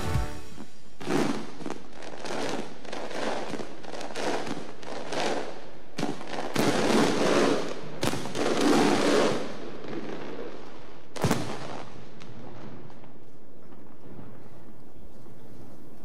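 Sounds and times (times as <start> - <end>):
fireworks bangs: 0.0 - 16.0
fireworks crackling: 0.0 - 16.0.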